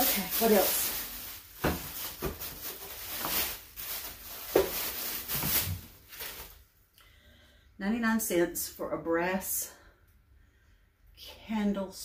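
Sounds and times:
rummaging through small objects: 0.0s - 6.6s.

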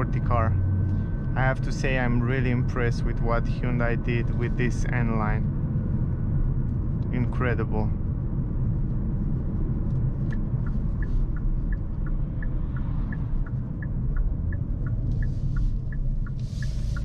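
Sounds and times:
car engine and road rumble: 0.0s - 17.0s
turn signal ticking: 9.9s - 17.0s.

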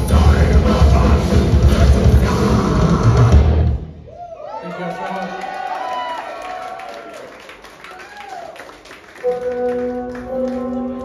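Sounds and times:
live metal band playing: 0.0s - 3.9s
pounding drums: 0.0s - 3.9s.

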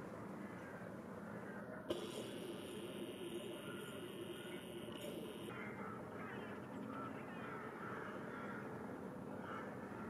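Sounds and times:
outdoor background noise: 0.0s - 10.0s
crows calling: 0.4s - 1.8s, 3.5s - 4.7s, 5.5s - 10.0s.

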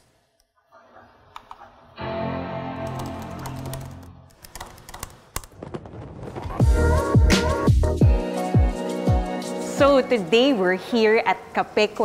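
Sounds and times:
laptop keyboard typing: 2.8s - 5.6s.

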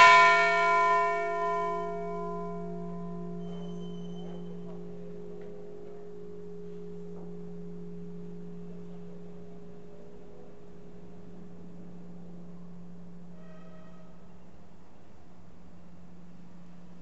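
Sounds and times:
church bells humming: 0.0s - 14.3s.

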